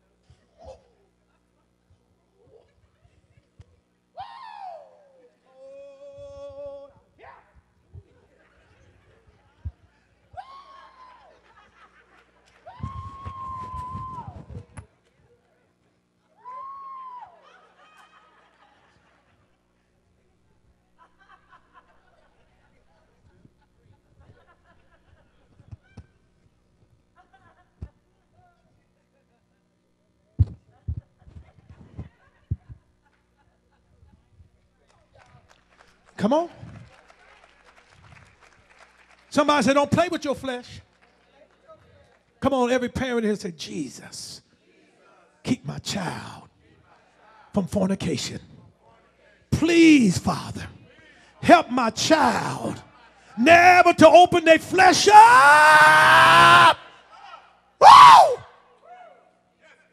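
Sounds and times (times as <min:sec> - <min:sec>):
man's loud falling cry: 0:54.9 - 0:56.8, 0:57.8 - 0:58.5.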